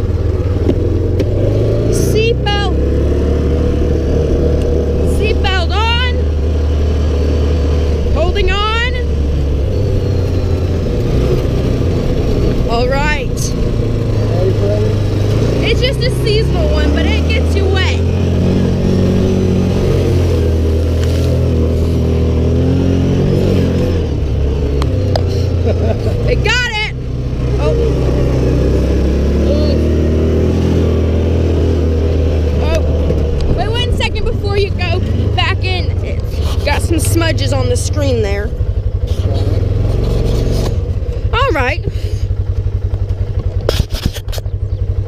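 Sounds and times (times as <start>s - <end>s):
vehicle engine droning: 0.0s - 45.0s.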